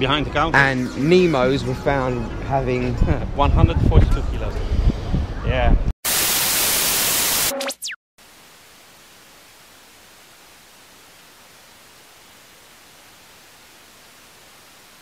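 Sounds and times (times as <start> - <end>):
falling electronic tones: 6.2 - 8.0
white noise static hiss: 8.2 - 15.0.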